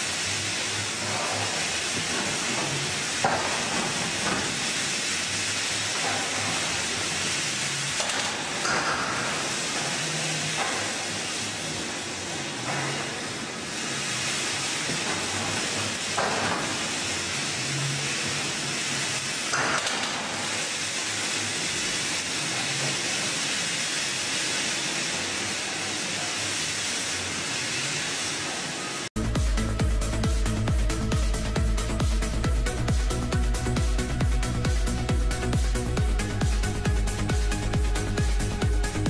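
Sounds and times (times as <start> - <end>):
steady hiss: 0.0 - 39.0.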